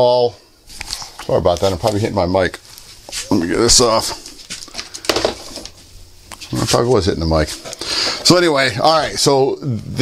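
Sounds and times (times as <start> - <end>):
rustling on lapel mic: 0.7 - 8.4.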